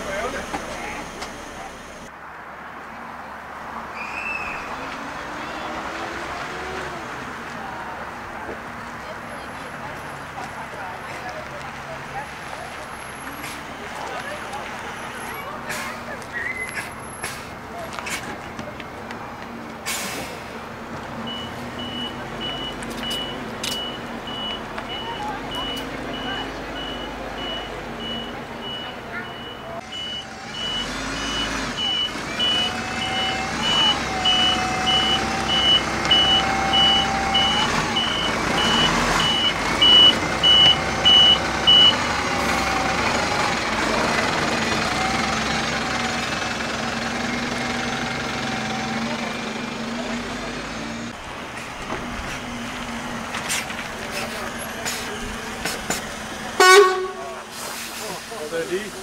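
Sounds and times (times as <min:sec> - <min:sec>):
diesel engine running: 0:00.0 - 0:02.1, 0:04.9 - 0:59.0
reversing alarm beeps: 0:21.3 - 0:42.1.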